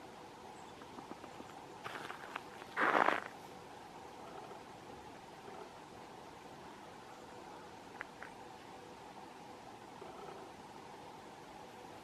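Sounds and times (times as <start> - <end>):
crunching scrape: 1.8 - 3.4.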